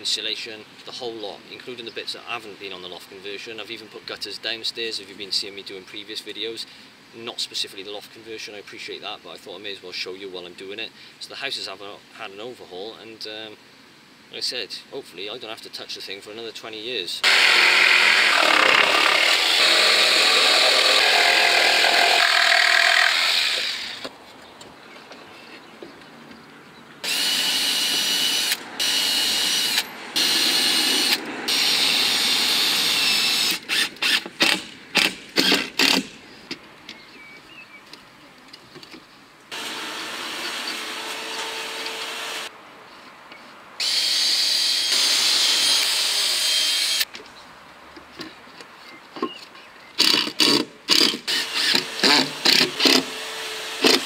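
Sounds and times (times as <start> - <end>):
power saw cutting timber: 17.2 - 24.1, 27.0 - 36.1, 39.5 - 42.5, 43.8 - 47.1, 50.0 - 54.0
cordless driver sinking screws: 27.0 - 36.1, 50.0 - 54.0.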